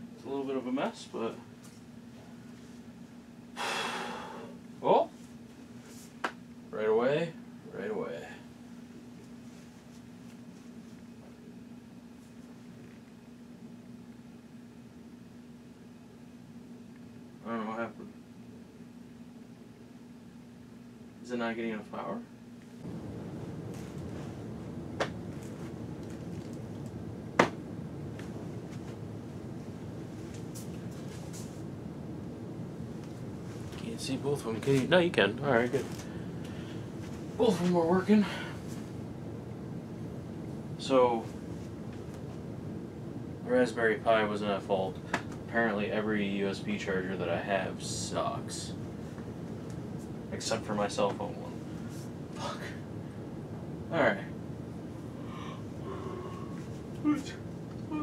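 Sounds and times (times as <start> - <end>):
faint steady hum: 0.0 - 58.0
man breathing out through nose: 3.6 - 4.6.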